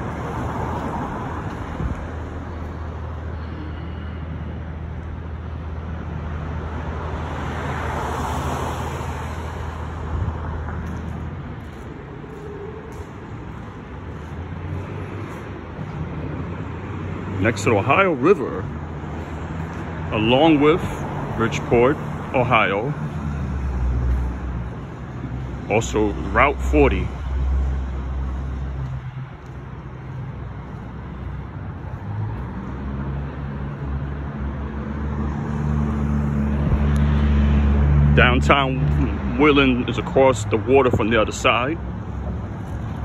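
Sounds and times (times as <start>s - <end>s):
road traffic rumble: 0.0s - 43.0s
vehicle passing: 0.0s - 43.0s.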